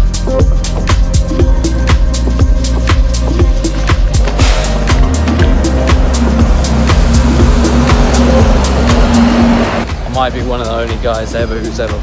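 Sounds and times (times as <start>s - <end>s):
music with steady beat: 0.0s - 12.0s
bus engine and road noise: 3.2s - 12.0s.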